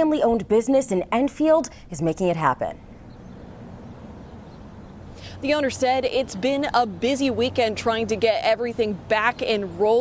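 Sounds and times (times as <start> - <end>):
faint city traffic rumble: 0.0 - 10.0.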